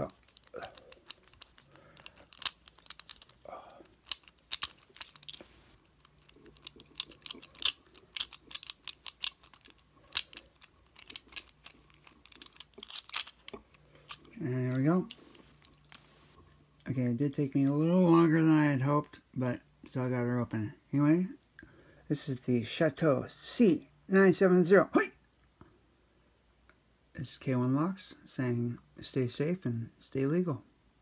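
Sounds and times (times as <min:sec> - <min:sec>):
lock pick clicking in padlock: 0:00.1 - 0:05.4, 0:06.0 - 0:13.5.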